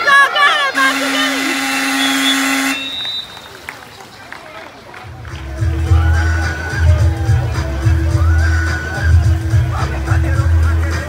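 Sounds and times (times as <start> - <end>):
buzzy game horn blast: 0.7 - 3.3.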